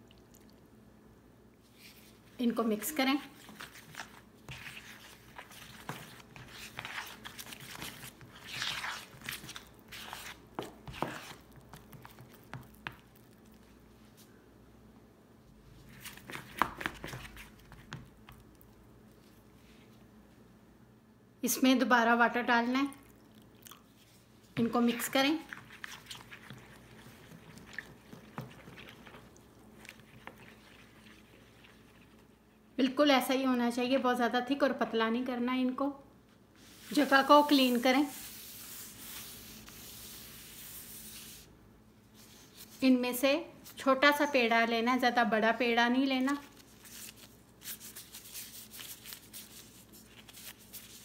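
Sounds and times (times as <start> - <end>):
wet squishing paste: 3.0 - 13.9, 22.9 - 32.5
spoon scraping plastic bowl: 24.6 - 32.2.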